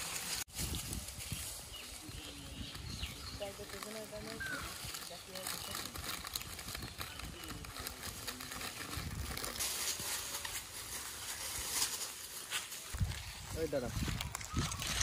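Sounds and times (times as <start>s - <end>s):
plastic packet crinkling: 3.5s - 12.1s.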